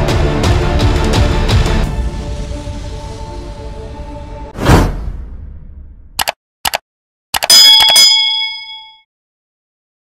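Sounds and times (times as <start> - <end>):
quick clicks: 6.2 - 6.8, 7.4 - 8.0
bell dinging: 7.4 - 9.1.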